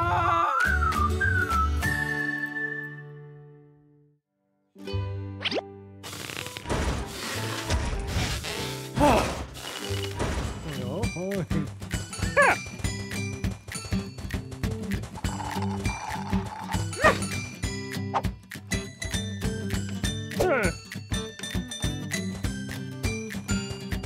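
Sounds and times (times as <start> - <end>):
cartoon soundtrack music: 4.8 - 24.0.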